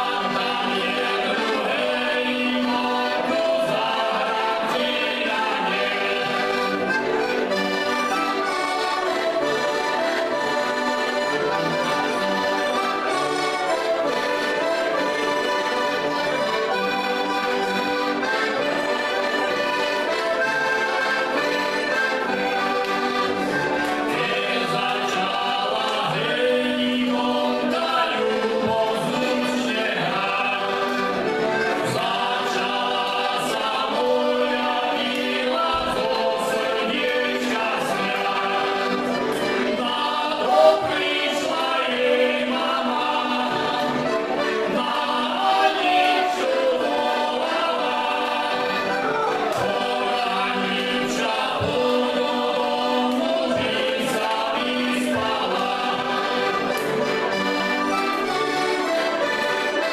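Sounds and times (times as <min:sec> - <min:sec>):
men singing: 0:00.0 - 0:09.0, 0:21.1 - 0:56.8
button accordions playing folk tune: 0:00.0 - 0:59.9.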